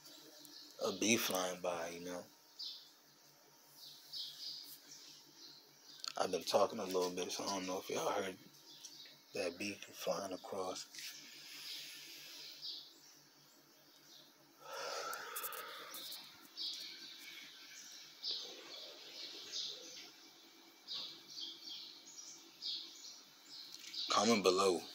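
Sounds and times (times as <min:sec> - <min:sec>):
birds chirping: 0:00.0 - 0:24.9
faint low hum: 0:00.0 - 0:24.9.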